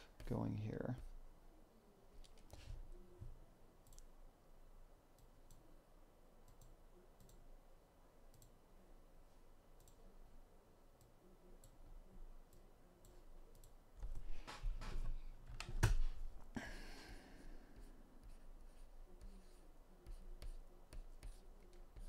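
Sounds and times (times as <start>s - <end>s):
faint computer input clicks: 3.8s - 4.1s.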